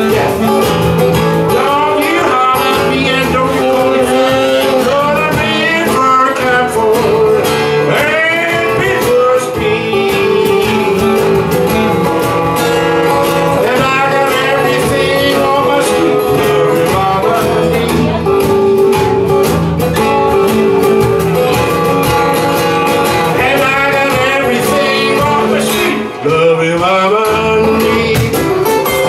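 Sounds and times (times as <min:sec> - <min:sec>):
acoustic guitar strumming: 0:00.0 - 0:29.0
man singing: 0:00.0 - 0:29.0.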